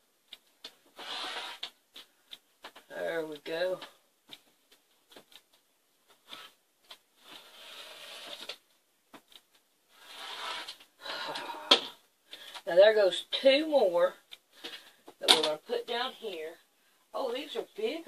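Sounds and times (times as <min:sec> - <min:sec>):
woman's voice: 0:02.9 - 0:04.0, 0:12.6 - 0:14.2, 0:15.2 - 0:18.0.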